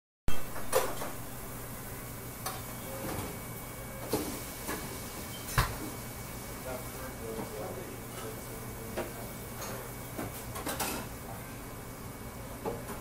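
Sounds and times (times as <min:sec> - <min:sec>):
kitchen equipment hum: 0:00.3 - 0:13.0
utensils and dishes clattering: 0:10.5 - 0:11.1.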